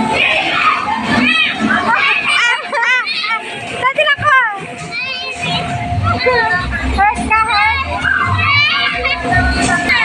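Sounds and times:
children calling and chattering: 0.0s - 10.0s
faint music: 0.0s - 10.0s.

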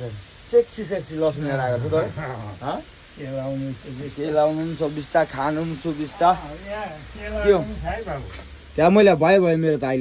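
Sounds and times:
food sizzling in a pan: 0.0s - 10.0s
man talking: 0.0s - 10.0s.

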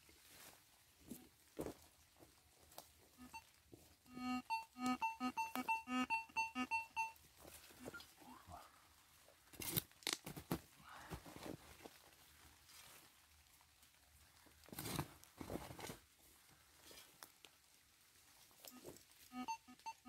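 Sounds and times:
metal detector beeping: 3.2s - 3.5s, 4.1s - 7.2s, 18.7s - 20.0s.

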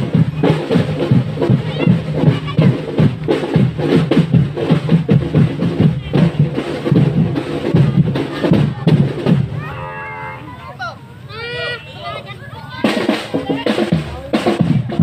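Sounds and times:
marching drum band: 0.0s - 15.0s.

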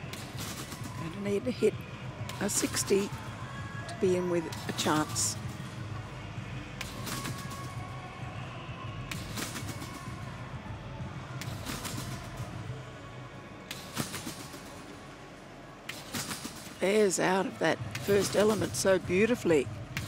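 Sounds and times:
low arena hum: 0.0s - 20.0s
trampoline springs rattling: 15.9s - 16.9s
trampoline thumping: 15.9s - 16.9s.

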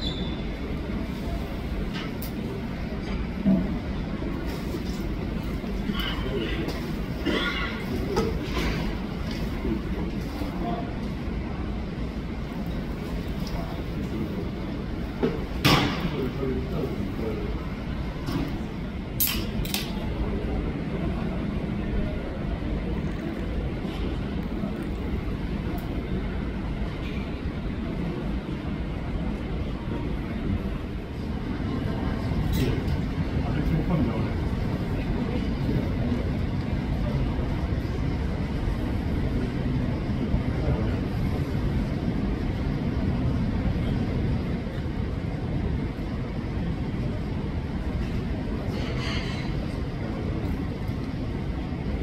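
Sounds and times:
muffled jet engines rumbling: 0.4s - 52.0s.

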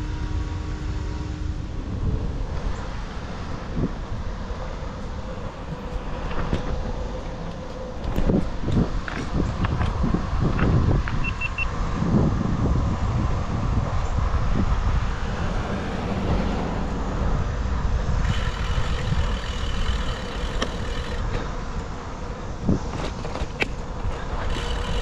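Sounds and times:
tyre and road rumble: 0.0s - 25.0s
wind buffeting microphone: 0.0s - 25.0s
short high beeps: 11.2s - 11.7s.

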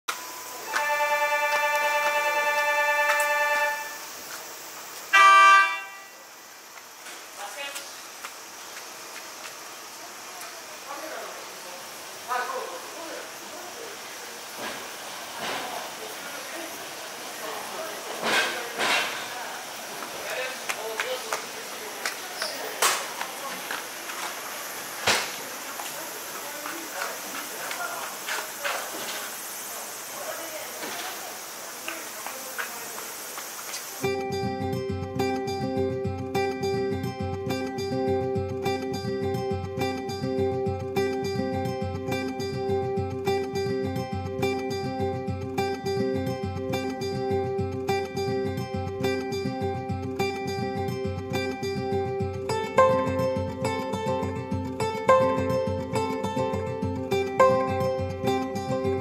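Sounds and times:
pulsing electric signal tone: 0.1s - 4.3s
steady hiss: 0.1s - 50.6s
cable car horn toot: 0.7s - 4.1s, 5.1s - 6.2s
faint distant voices: 9.9s - 33.4s.

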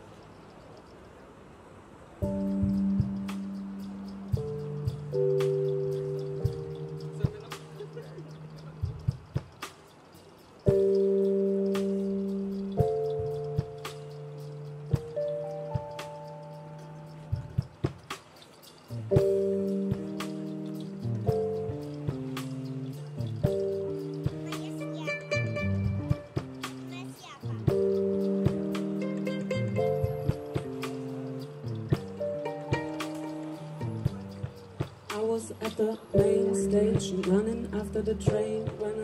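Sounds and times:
live band held chords: 10.7s - 39.0s.

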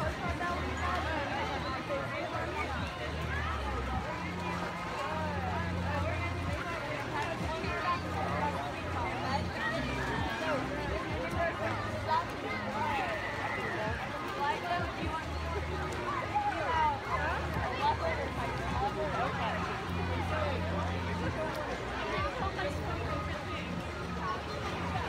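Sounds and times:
chatter of many voices: 0.0s - 25.0s.

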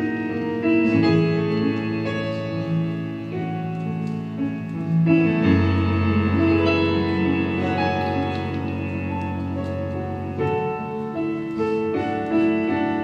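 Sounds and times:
keyboard playing held chords: 0.0s - 13.0s
live band music: 0.0s - 13.0s.

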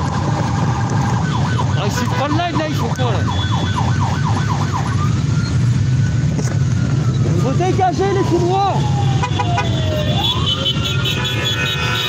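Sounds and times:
motorcycle engines droning: 0.0s - 12.0s.

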